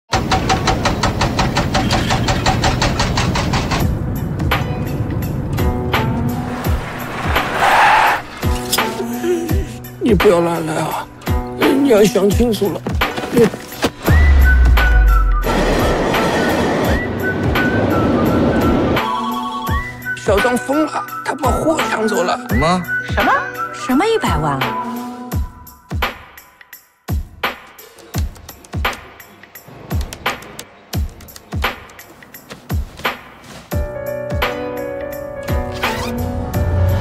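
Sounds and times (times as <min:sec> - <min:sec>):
train rumbling over bridge: 0:00.2 - 0:08.4.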